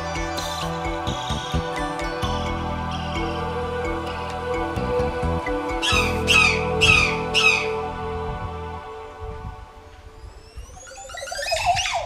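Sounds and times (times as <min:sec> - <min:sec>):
soft background music: 0:00.0 - 0:10.8.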